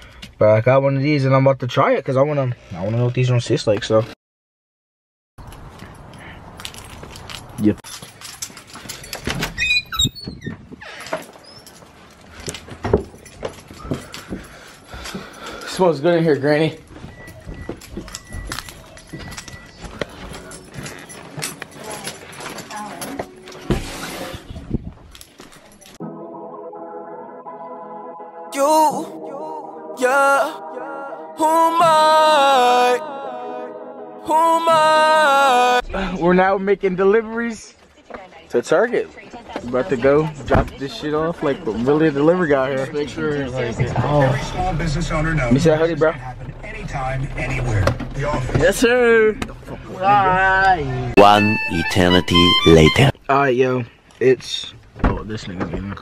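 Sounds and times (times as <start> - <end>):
footsteps on stairs: 12.6 - 15.3, 16.8 - 23.9
voices talking in car: 34.3 - 56.0
low steady hum: 44.0 - 49.6.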